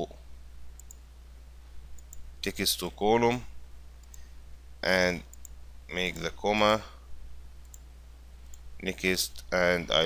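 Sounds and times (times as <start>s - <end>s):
steady low hum: 0.0s - 10.0s
faint computer mouse clicks: 0.8s - 1.0s, 2.0s - 2.3s, 4.0s - 4.3s, 8.5s - 8.7s.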